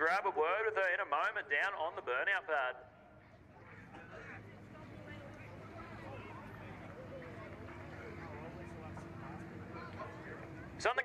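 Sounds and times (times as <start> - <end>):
low car engine hum: 3.0 - 11.0.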